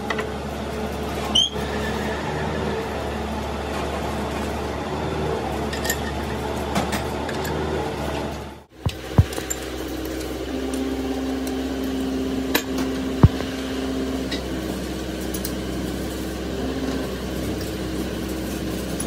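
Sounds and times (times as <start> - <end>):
sharp metallic knocks: 8.9 - 9.5.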